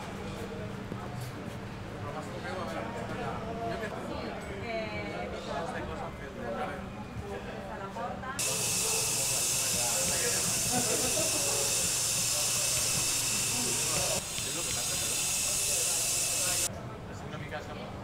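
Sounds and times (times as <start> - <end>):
faint voices: 0.0 - 18.0
loud steady hiss: 8.4 - 16.7
street sound: 8.4 - 16.7.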